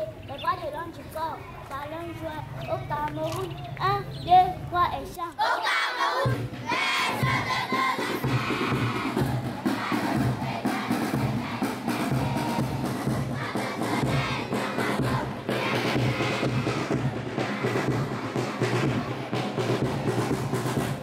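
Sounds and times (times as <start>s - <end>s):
children singing together: 5.2s - 20.3s
steady drum beat: 6.0s - 21.0s.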